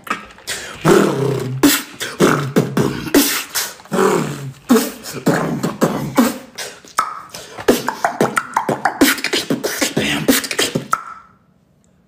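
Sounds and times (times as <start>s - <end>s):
beatboxing: 0.2s - 11.4s.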